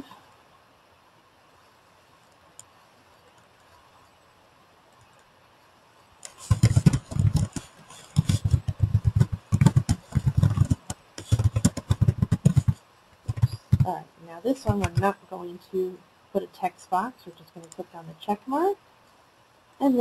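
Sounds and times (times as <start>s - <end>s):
keyboard typing: 6.2s - 15.2s.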